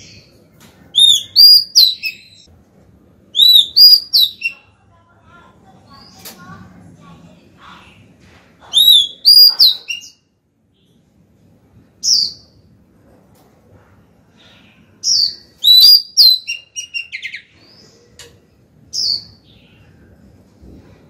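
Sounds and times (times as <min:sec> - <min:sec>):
bird singing whistled notes: 0:01.0 - 0:02.5, 0:03.4 - 0:04.6, 0:08.8 - 0:10.2, 0:15.1 - 0:17.5.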